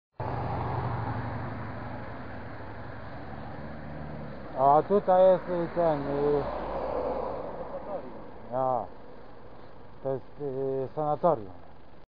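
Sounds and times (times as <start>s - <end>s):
cars going by: 0.2s - 12.0s.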